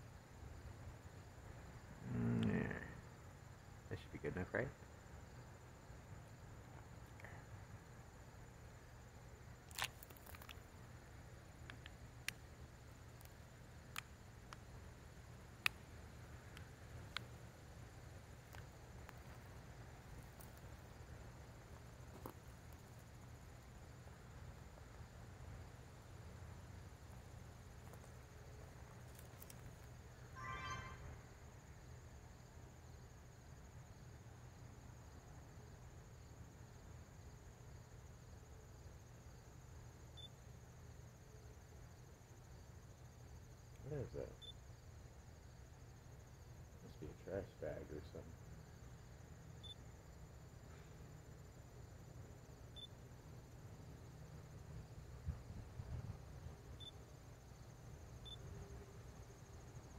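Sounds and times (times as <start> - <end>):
faint low hum: 0.0 - 59.9
small sharp clicks: 9.7 - 10.7, 11.6 - 12.4, 13.2 - 14.7, 15.6 - 15.8, 16.5 - 17.3, 29.0 - 29.9
short pitched chirp: 30.4 - 31.4.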